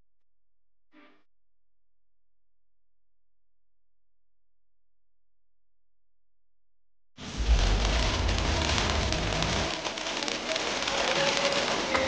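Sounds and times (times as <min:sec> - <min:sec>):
firework fountain hissing crackling: 0:07.2 - 0:12.0
deep bass: 0:07.3 - 0:09.7.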